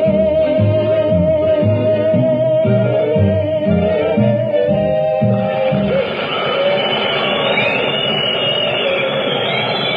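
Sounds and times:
faint wavering whistles: 5.4s - 9.9s.

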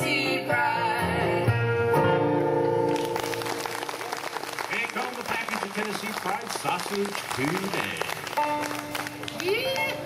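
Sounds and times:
audience applause: 2.9s - 10.0s.

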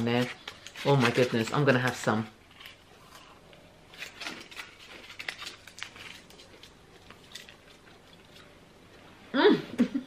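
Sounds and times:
foil wrapper crinkling: 0.0s - 3.3s, 3.9s - 8.4s.

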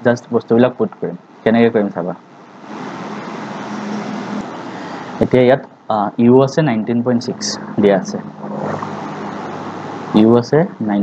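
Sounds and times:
faint low hum: 0.0s - 11.0s
steady rushing noise: 2.2s - 5.6s, 6.2s - 10.5s.

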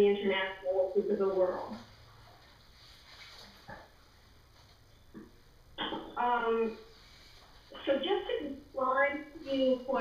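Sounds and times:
low steady hum: 0.0s - 10.0s
faint hiss: 6.2s - 10.0s.

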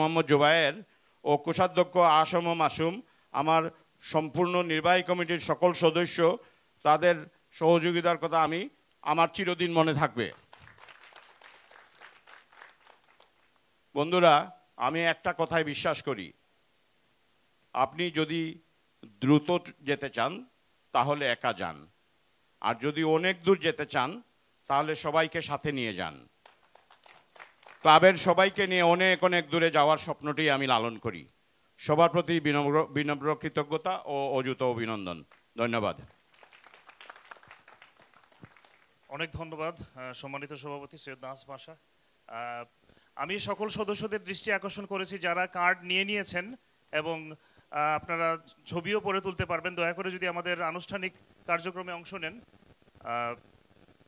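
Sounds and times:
scattered applause: 10.3s - 13.6s, 26.4s - 28.2s, 36.0s - 39.1s.

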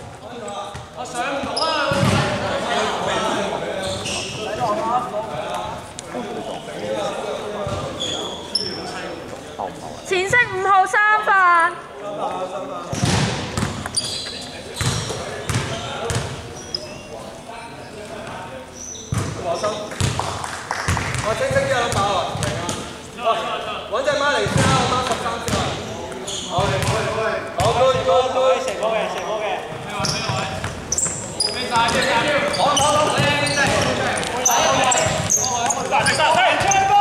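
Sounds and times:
basketball bouncing on hardwood: 26.6s - 27.0s.

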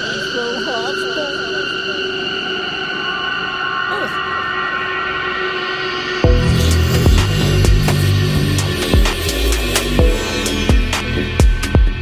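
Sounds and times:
high electronic drone: 0.0s - 12.0s.

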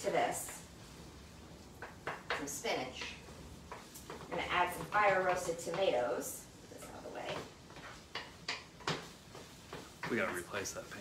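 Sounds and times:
utensil knocking against a pan: 1.8s - 10.7s.

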